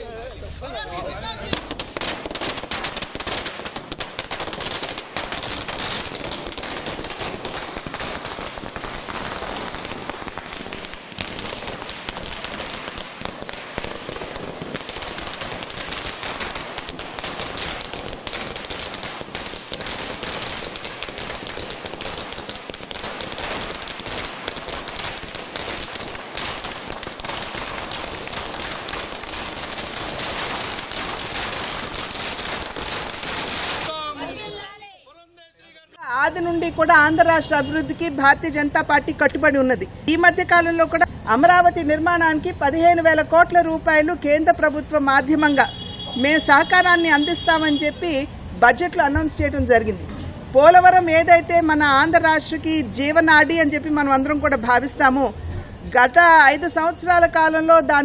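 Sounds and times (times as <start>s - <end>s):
string of firecrackers banging: 1.3s - 34.0s.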